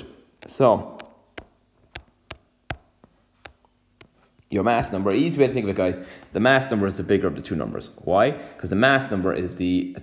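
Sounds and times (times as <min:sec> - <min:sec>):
sharp taps on hard surface: 0:00.0 - 0:05.0.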